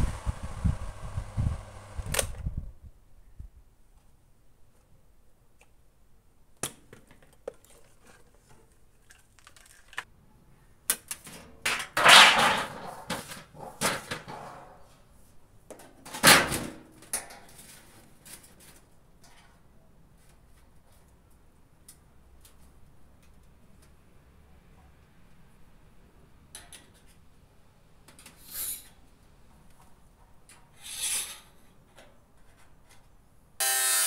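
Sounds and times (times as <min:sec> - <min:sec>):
sheet metal rattling and scraping: 0:11.8 - 0:14.8.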